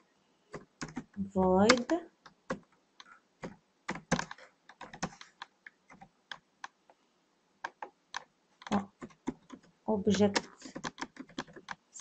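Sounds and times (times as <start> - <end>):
keyboard keystroke clicks: 0.6 - 2.0.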